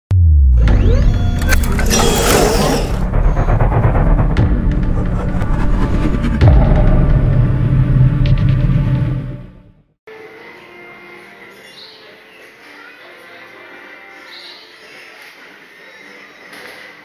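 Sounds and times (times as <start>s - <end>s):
intro music with heavy bass: 0.1s - 9.9s
low hit: 0.1s - 9.9s.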